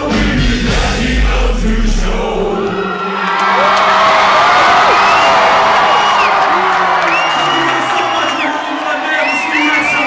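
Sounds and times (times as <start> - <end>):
rock band low held sound: 0.0 - 2.8
concert crowd cheering: 2.1 - 10.0.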